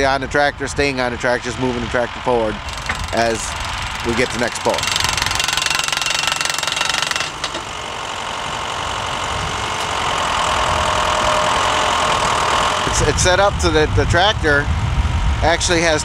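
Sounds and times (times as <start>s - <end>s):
engine and air compressor running: 0.0s - 16.0s
steady mechanical knocking: 1.4s - 13.4s.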